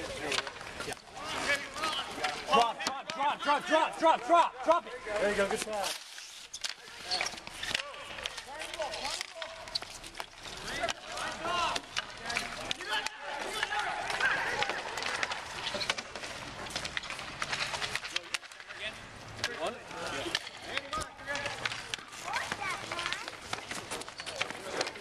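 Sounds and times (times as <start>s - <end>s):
players shouting: 10.5s - 15.6s.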